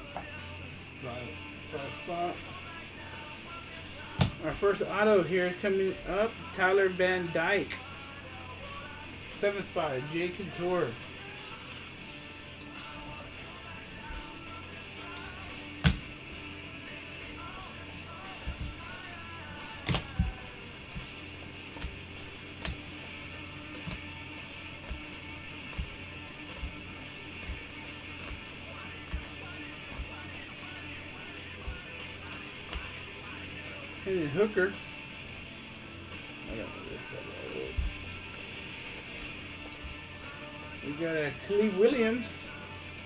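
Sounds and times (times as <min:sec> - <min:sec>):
quiet background music: 0:00.0 - 0:43.0.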